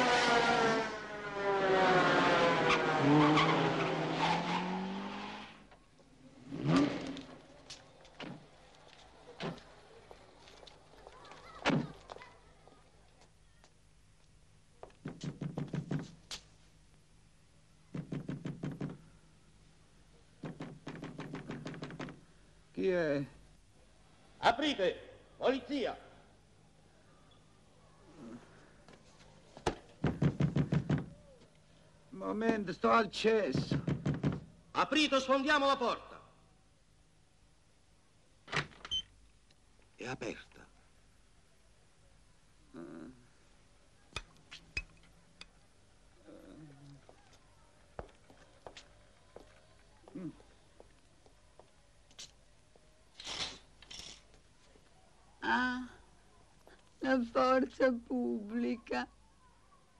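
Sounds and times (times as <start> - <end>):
motor vehicle passing: 0.0 - 11.6
knocking on a door: 15.0 - 16.2, 17.9 - 19.0, 20.4 - 22.2, 30.0 - 31.2, 33.5 - 34.5.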